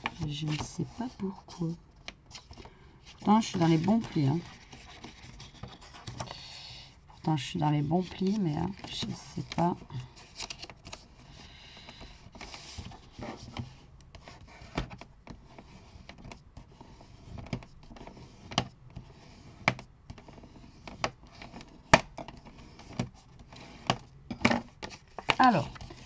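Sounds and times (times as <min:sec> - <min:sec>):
paper rustling: 0:00.0 - 0:06.4, 0:07.2 - 0:14.8, 0:24.8 - 0:26.0.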